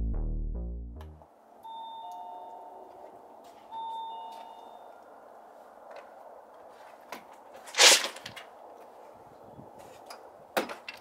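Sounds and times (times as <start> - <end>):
two-note doorbell chime: 1.6 - 3.0, 3.7 - 4.9.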